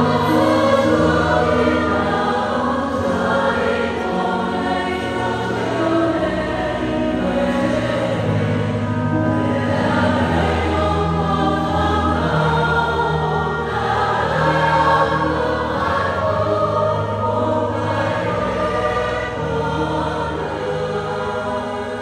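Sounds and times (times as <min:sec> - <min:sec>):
mixed choir singing a hymn: 0:00.0 - 0:22.0.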